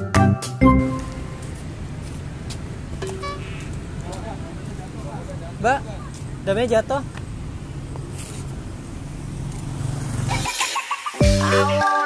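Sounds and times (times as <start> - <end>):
distant traffic rumble: 0.8 - 10.6.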